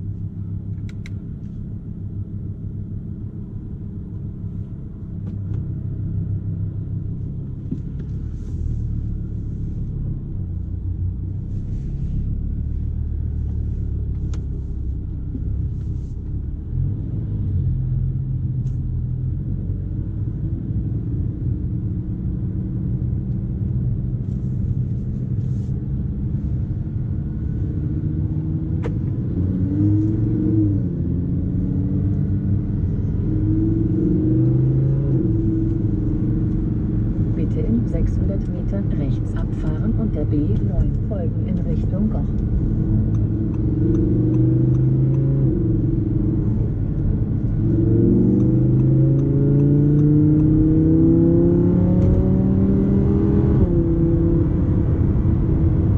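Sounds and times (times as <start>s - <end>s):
car engine accelerating: 0.0s - 55.9s.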